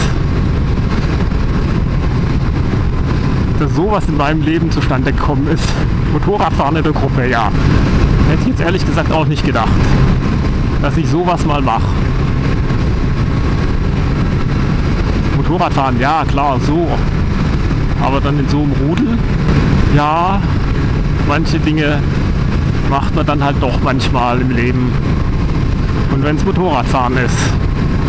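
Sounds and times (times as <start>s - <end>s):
motorcycle engine running: 0.0s - 28.0s
wind rushing over microphone: 0.0s - 28.0s.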